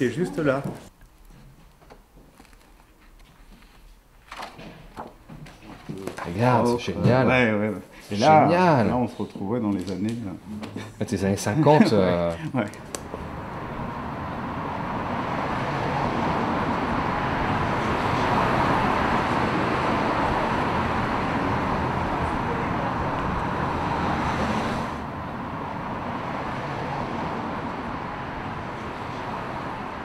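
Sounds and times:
passing cars: 11.7 - 30.0.

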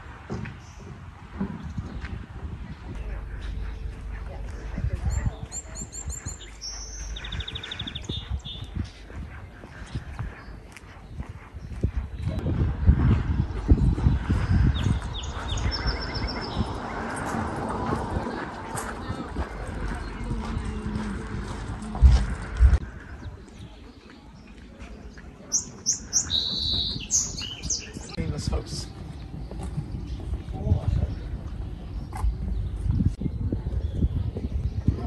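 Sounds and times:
footsteps on wooden boards: 0.0 - 15.7, 16.6 - 22.8, 28.5 - 33.2
low steady rumble: 2.5 - 8.6
bird chirping: 2.9 - 12.3, 14.1 - 17.0, 23.1 - 34.2.

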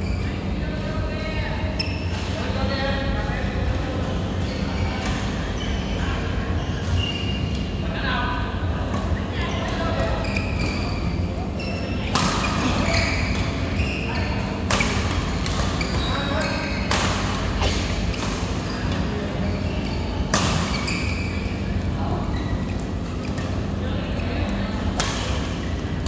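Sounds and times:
steady low hum: 0.0 - 26.0
rackets hitting shuttlecock: 12.1 - 13.6, 14.6 - 16.0, 16.6 - 19.1, 20.3 - 21.0, 25.0 - 25.6.

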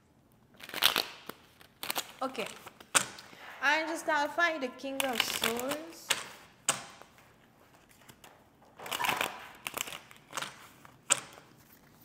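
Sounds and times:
cards rustling and snapping: 0.4 - 3.5, 5.0 - 12.0.

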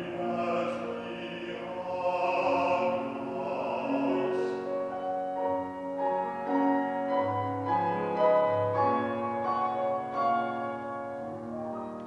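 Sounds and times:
grand piano playing: 0.0 - 12.0.

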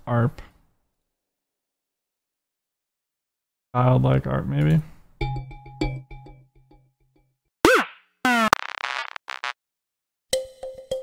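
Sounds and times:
buzzy synth burst: 7.7 - 9.6.

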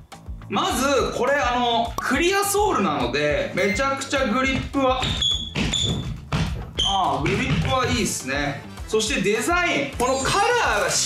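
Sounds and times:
rubber shoe sole squeaking: 5.0 - 7.0.

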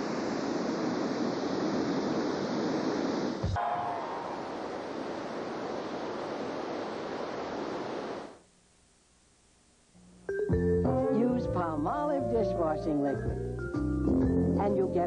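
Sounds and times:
waterfall rushing: 0.0 - 8.3.

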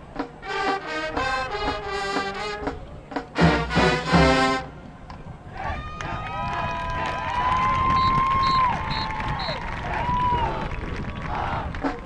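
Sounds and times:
spectators cheering and whooping: 5.5 - 11.7.

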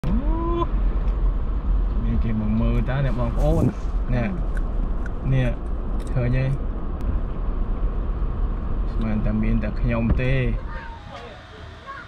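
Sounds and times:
car cabin rumble: 0.0 - 11.1.

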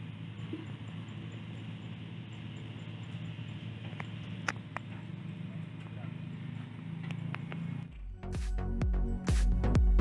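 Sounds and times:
machinery humming: 0.0 - 8.3.

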